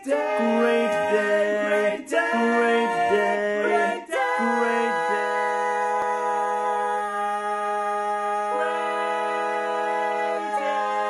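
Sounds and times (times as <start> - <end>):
male voices singing a cappella: 0.0 - 11.0.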